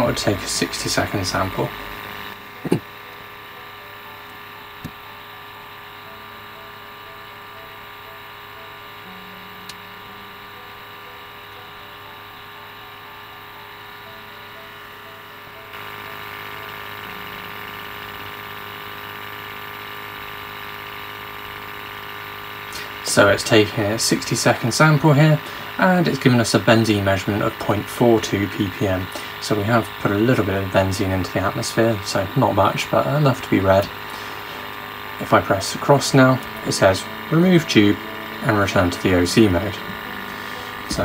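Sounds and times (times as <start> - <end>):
sampling pump humming: 0.0 - 41.0.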